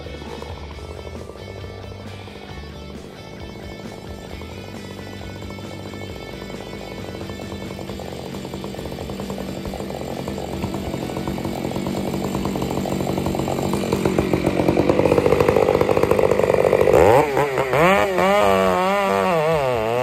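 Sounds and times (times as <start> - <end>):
chainsaw idling and cutting wood: 0.0 - 20.0.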